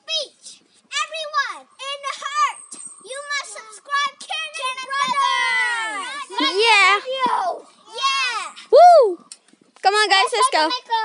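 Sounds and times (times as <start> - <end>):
children's high-pitched voices: 0.0 - 11.0.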